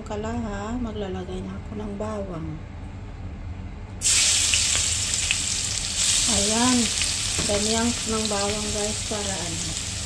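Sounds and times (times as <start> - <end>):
garlic sizzling in hot oil: 4.0 - 10.0.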